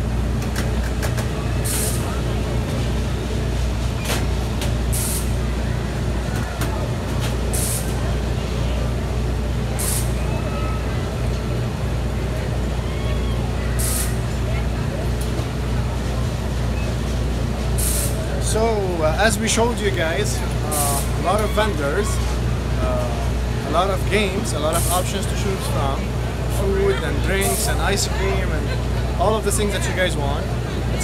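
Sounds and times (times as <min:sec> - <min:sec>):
low mechanical hum: 0:00.0 - 0:31.0
outdoor crowd ambience: 0:00.0 - 0:31.0
short hisses of air: 0:01.7 - 0:02.1, 0:04.9 - 0:05.4, 0:07.5 - 0:08.0, 0:09.8 - 0:10.2, 0:13.8 - 0:14.2, 0:17.8 - 0:18.2.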